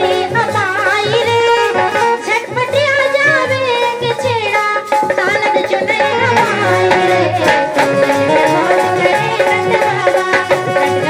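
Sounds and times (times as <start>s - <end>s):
woman singing into a microphone: 0.0s - 11.0s
low drum beat: 5.9s - 9.3s.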